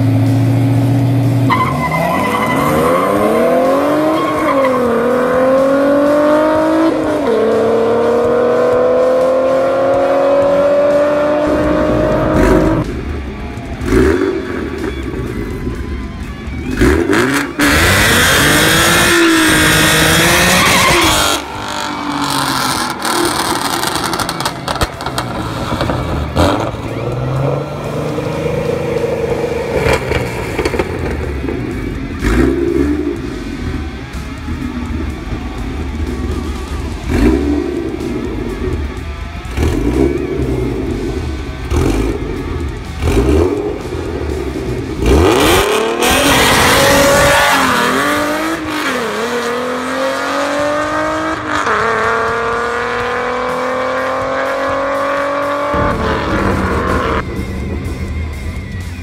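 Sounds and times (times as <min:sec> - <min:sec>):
car engine idling and revving: 0:00.0 - 0:59.0
car accelerating hard with upshifts: 0:45.0 - 0:57.2.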